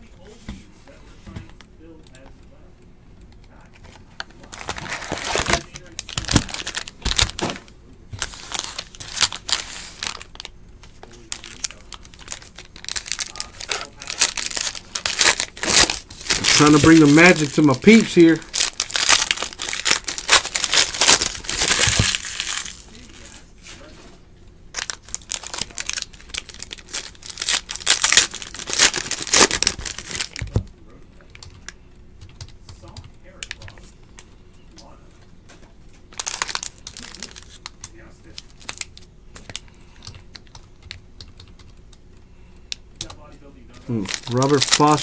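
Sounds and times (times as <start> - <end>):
foil wrappers crinkling and tearing: 3.7 - 23.9, 24.7 - 30.6, 36.1 - 41.0, 43.7 - 45.0.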